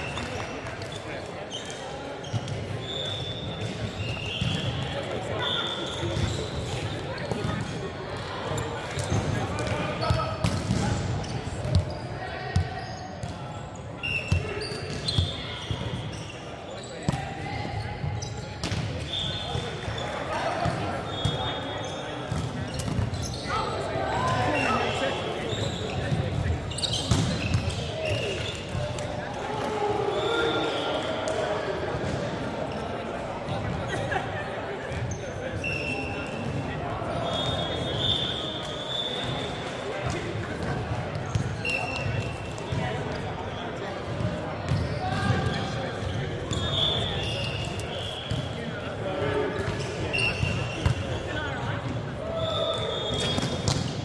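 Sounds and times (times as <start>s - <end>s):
sneakers squeaking on wooden court: 0.0s - 29.1s, 34.9s - 48.6s, 49.6s - 54.0s.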